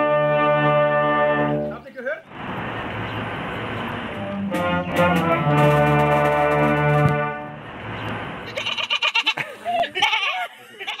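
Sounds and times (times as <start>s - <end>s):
wind band chord: 0.0s - 1.8s, 3.6s - 7.9s.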